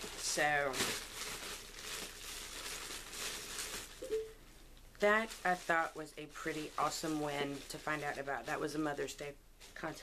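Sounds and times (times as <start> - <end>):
paper rustling and crinkling: 0.0 - 4.0, 5.0 - 10.0.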